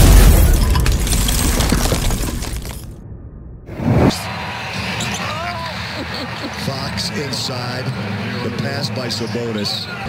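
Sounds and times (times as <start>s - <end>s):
loud hit: 0.0s - 4.2s
rising whoosh: 3.0s - 4.2s
arena crowd noise: 3.7s - 10.0s.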